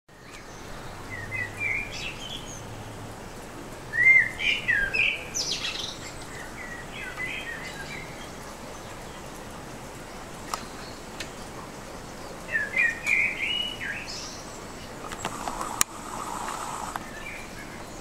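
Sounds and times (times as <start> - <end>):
birds chirping: 0.1 - 18.0
steady background hiss: 0.2 - 18.0.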